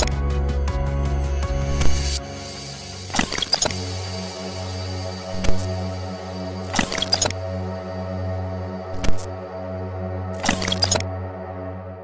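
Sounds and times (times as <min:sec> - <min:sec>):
dark score with low drone: 0:00.0 - 0:12.0.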